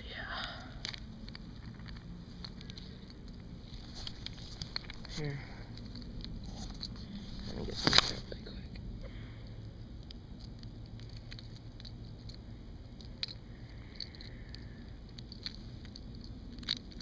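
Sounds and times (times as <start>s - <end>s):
hands clicking and rustling: 0.4s - 17.0s.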